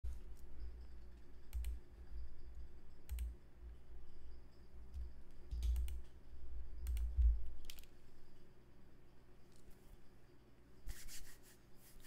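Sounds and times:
keyboard and mouse clicks: 1.4s - 1.9s, 3.0s - 3.4s, 4.9s - 6.2s, 6.8s - 8.0s.

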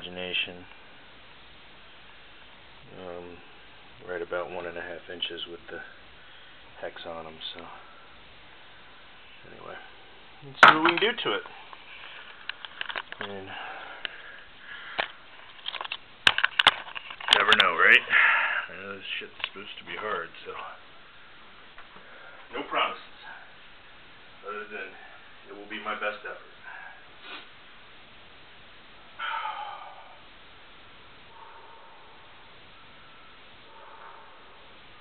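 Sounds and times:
strained breath: 29.2s - 30.3s.

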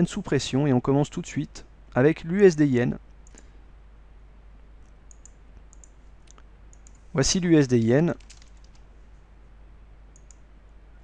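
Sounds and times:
low steady hum: 0.0s - 11.0s
keyboard and mouse clicks: 4.8s - 7.0s, 8.2s - 8.9s, 10.1s - 10.5s.

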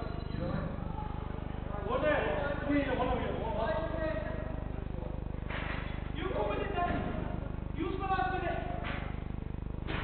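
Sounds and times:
low pulsing buzz: 0.0s - 10.0s.

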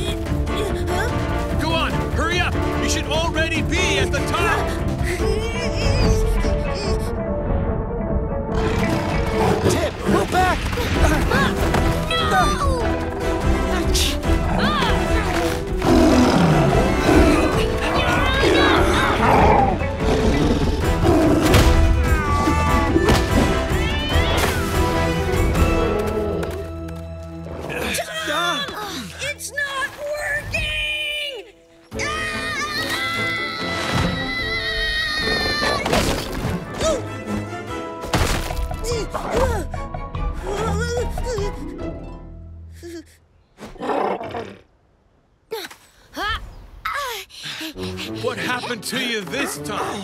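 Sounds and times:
cartoon action music: 7.8s - 26.0s
animal roars: 15.8s - 17.6s.

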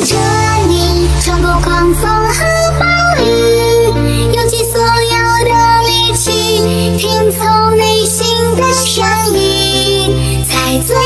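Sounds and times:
synth bass line: 0.0s - 6.4s
high processed vocal melody: 0.0s - 11.0s.

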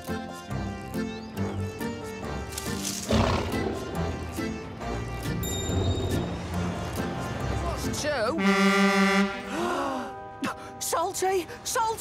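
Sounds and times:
cartoon background music: 0.0s - 12.0s
tiger growling: 2.9s - 4.7s.

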